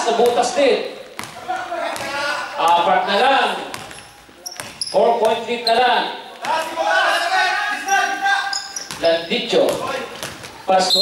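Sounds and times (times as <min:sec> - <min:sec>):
voices calling out in hall: 0:00.0 - 0:11.0
basketball bouncing on floor: 0:01.1 - 0:02.9, 0:03.6 - 0:05.5, 0:08.8 - 0:10.6.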